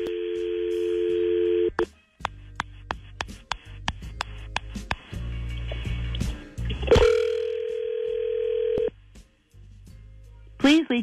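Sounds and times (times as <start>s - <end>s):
telephone line noise: 0.0s - 1.8s, 6.9s - 8.9s.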